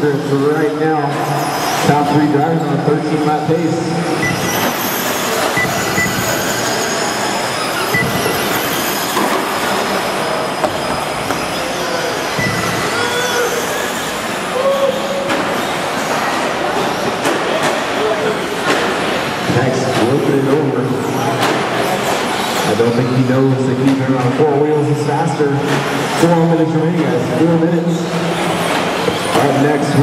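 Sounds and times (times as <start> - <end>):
remote control trucks whining: 0.2 - 19.4, 21.1 - 23.2.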